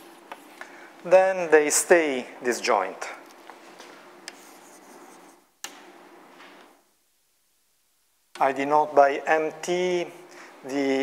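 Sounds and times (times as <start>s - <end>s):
chalk scratching on blackboard: 4.3s - 5.5s.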